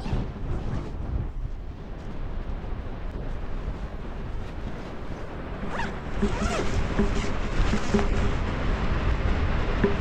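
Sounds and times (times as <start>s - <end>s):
fabric fluttering in wind: 0.0s - 10.0s
wind rushing over microphone: 0.0s - 10.0s
sliding squeak: 5.7s - 8.2s.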